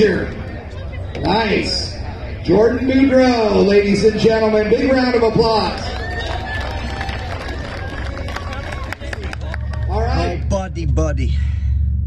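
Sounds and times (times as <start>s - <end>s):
murmur of voices: 0.0s - 10.5s
crowd applauding: 4.9s - 10.6s.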